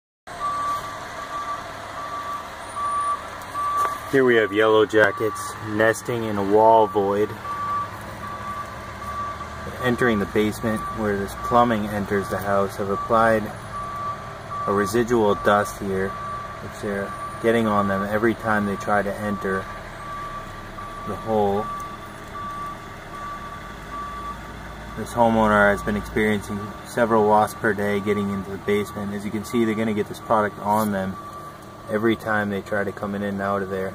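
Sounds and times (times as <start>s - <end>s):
reversing alarm beeping: 0.3s - 33.9s.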